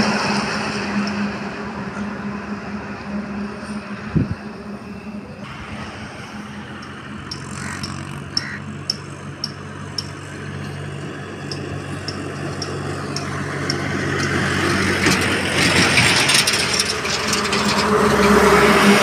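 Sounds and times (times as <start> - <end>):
tanker truck rushing past: 0.0 - 19.0
tractor diesel engine: 0.0 - 19.0.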